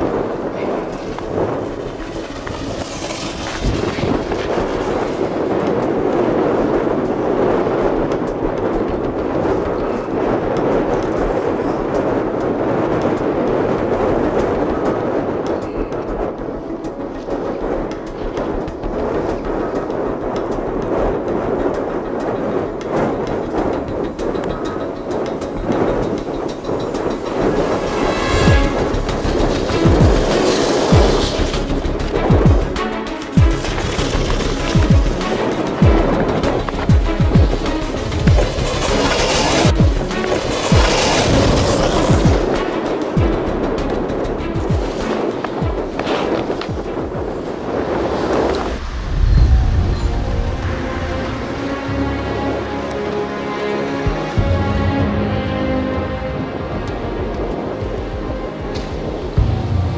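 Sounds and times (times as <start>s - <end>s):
low thumps from gusts: 0.0s - 53.4s
wind buffeting microphone: 0.0s - 59.9s.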